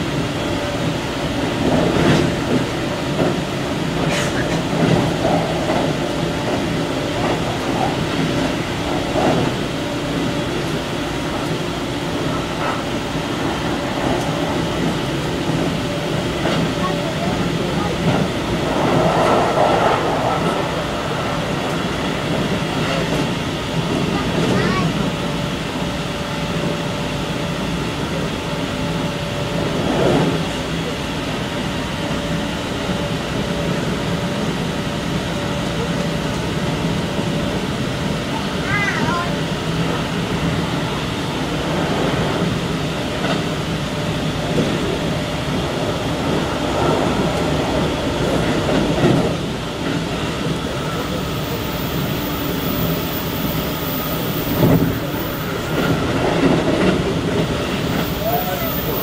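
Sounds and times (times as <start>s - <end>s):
wheels rumbling on rail: 0.0s - 59.0s.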